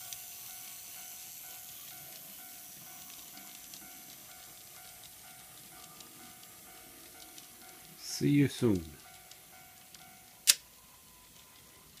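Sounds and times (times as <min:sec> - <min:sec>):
faint steady hum: 0:00.0 - 0:12.0
sharp click: 0:10.4 - 0:10.6.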